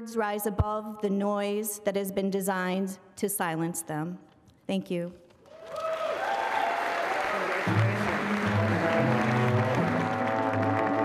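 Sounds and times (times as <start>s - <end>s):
audience applause: 5.5s - 11.0s
live band playing: 7.6s - 11.0s
bass line: 7.7s - 11.0s.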